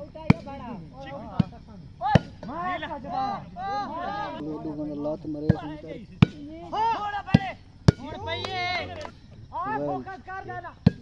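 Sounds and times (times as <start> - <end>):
players shouting: 0.0 - 11.0.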